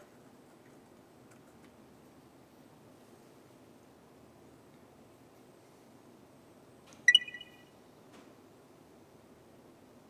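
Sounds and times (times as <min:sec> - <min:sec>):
short bright chime: 0:07.1 - 0:07.6.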